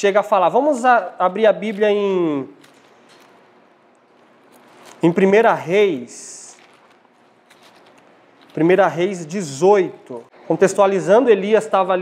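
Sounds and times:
thin pages rustling: 0.4 - 10.2.

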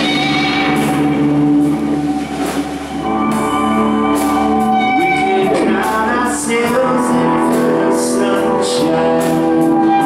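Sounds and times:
rock band electric guitars droning: 0.0 - 10.0.

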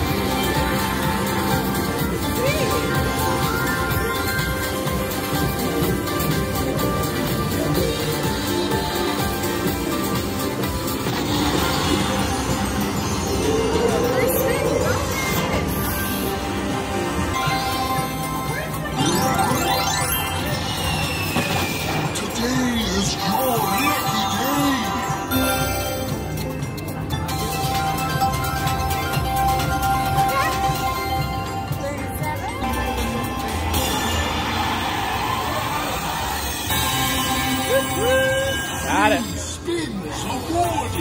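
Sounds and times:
slot machine music and chimes: 0.0 - 35.6, 36.4 - 39.7.

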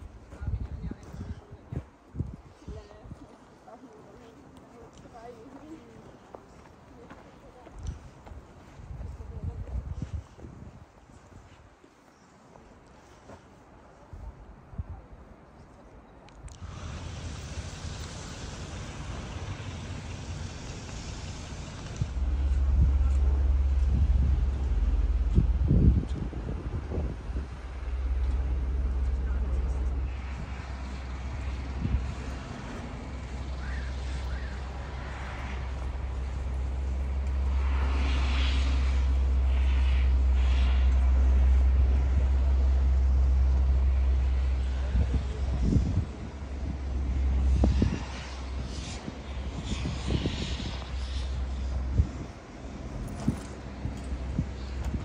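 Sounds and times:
street traffic rumble: 0.0 - 55.0
faint hiss: 11.1 - 55.0.

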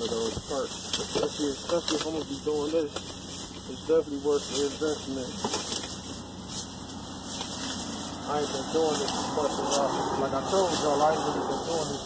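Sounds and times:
car engine idling: 0.0 - 12.0
plastic bags crinkling: 0.0 - 12.0.

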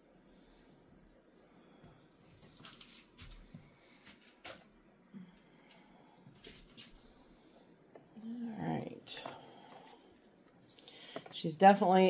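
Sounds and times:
faint crackles and rustles: 0.0 - 12.0.

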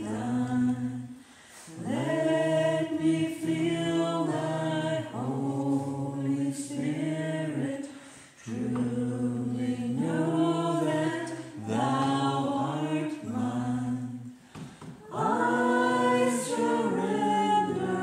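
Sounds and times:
congregation singing a hymn: 0.0 - 18.0.

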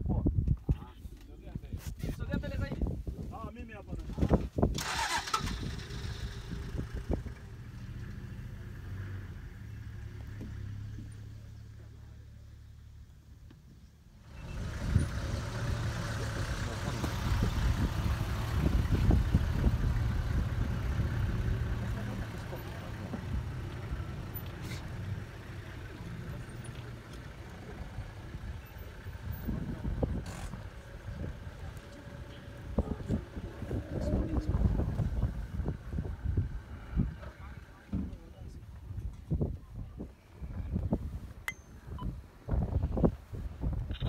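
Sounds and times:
vehicle engine running: 4.8 - 13.5, 14.2 - 39.0.

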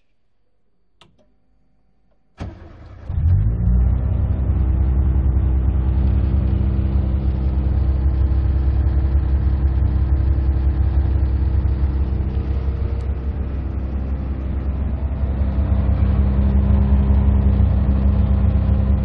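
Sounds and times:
car engine starting and idling: 2.4 - 19.0.

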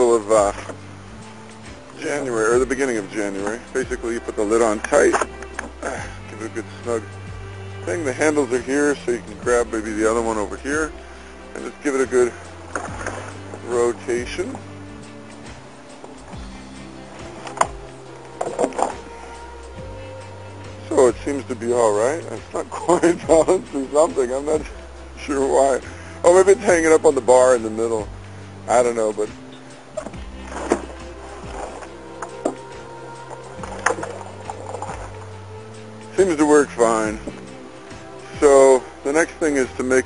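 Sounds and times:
barrel creaking and squeaking: 0.0 - 7.1, 11.6 - 28.1, 28.7 - 40.0
background music: 0.0 - 40.0.

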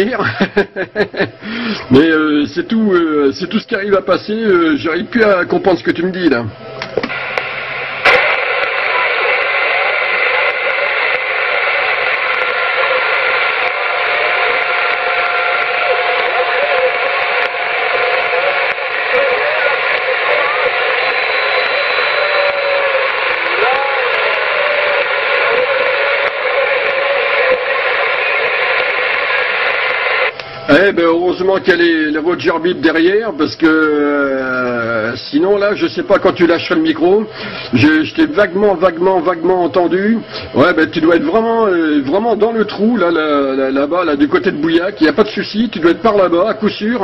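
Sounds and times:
radio static hiss: 1.2 - 47.0
faint garbled radio voice: 8.0 - 30.8.

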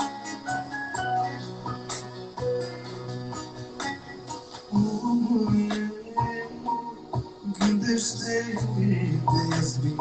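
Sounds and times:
worship song with keyboard: 0.0 - 10.0.

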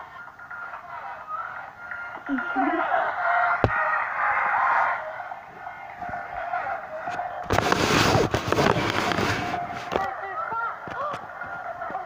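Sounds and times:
girl laughing: 2.3 - 3.1.

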